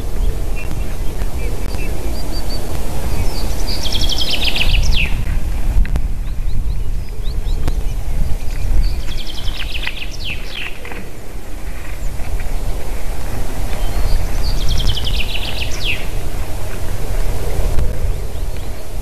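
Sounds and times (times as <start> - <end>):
chaffinch singing trills: 0.0 - 5.4, 6.1 - 19.0
steady low rumble: 0.0 - 19.0.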